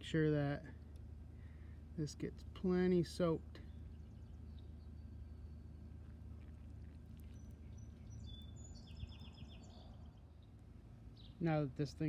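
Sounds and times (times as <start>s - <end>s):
high bird chirps: 7.3s - 10.5s.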